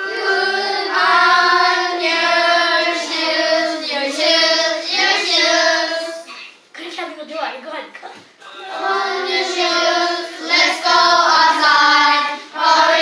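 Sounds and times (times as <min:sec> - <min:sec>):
children singing in unison: 0:00.0 - 0:06.3, 0:08.6 - 0:13.0.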